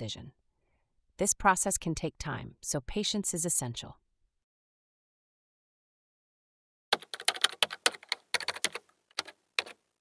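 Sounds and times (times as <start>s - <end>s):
keyboard key clicks: 7.0s - 9.8s.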